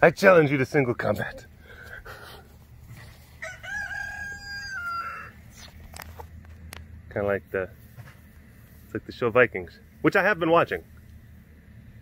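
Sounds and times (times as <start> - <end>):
rooster crowing: 3.3 - 5.4.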